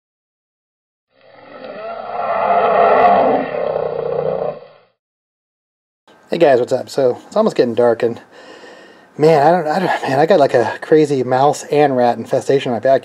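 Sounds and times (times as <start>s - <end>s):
long roar: 1.2s - 4.9s.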